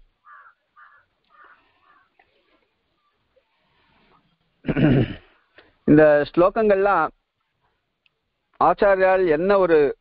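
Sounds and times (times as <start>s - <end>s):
faint harsh animal calls: 0.2s - 4.4s.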